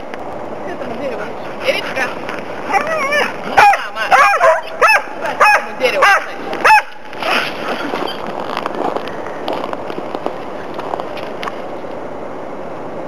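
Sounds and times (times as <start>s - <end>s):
skis scraping over snow: 7.1s - 11.7s.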